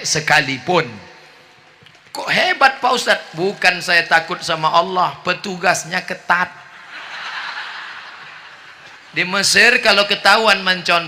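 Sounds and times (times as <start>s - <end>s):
audience laughing: 6.6s - 9.2s.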